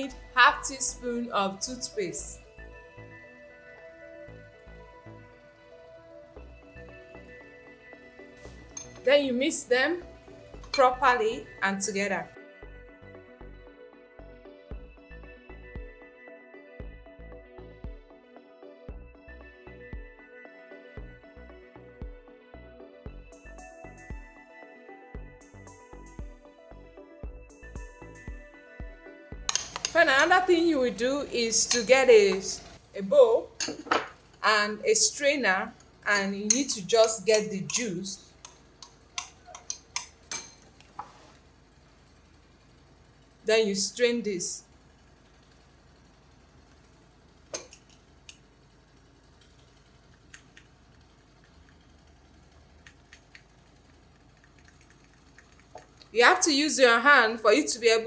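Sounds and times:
instrumental background music: 0.0s - 41.1s
metal spoon clinking glass bowl: 8.7s - 9.1s, 29.5s - 30.4s, 31.6s - 32.4s, 33.6s - 34.1s, 36.2s - 37.9s, 38.8s - 40.7s.

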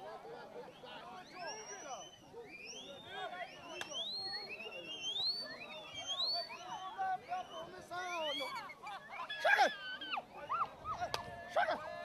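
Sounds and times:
voices shouting: 5.4s - 12.0s.

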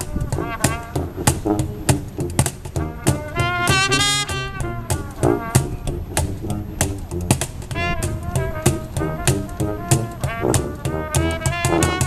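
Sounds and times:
cajon struck with sticks: 0.0s - 12.0s
sousaphone bass line: 0.0s - 12.0s
trumpet phrases: 0.0s - 12.0s.

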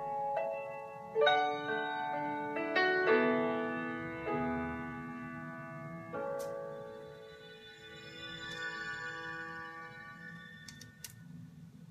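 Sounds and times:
keyboard chord ringing: 0.0s - 9.3s.

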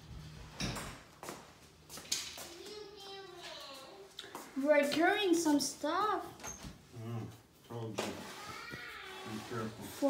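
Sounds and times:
small child calling out: 8.3s - 9.5s.

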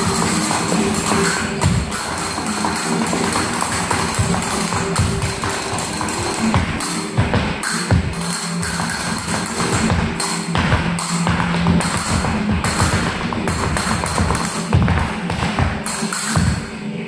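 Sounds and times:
flamenco music: 0.0s - 16.8s
heeled shoes tapping wooden floor: 6.5s - 16.6s.

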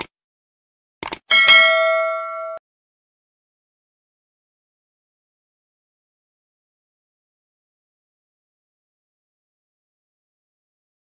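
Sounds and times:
notification bell ding: 1.3s - 2.6s.

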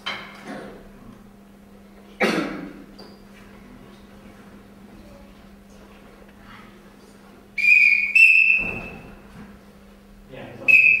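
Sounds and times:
whistle blasts: 7.6s - 9.1s, 10.6s - 11.0s.

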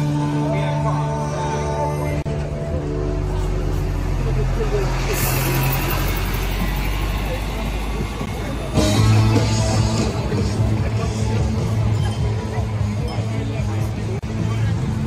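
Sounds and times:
bus engine running: 0.0s - 15.0s
music playing: 0.0s - 15.0s
voices: 0.0s - 15.0s.

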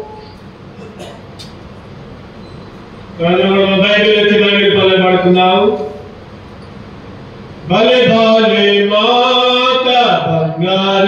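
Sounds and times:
ceiling fan running: 0.0s - 11.0s
sound system noise: 0.0s - 11.0s.

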